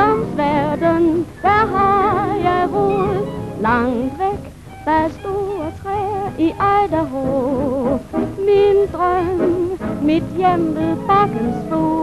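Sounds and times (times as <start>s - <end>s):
swing big band playing: 0.0s - 12.0s
lead melody with wide vibrato: 1.5s - 4.5s.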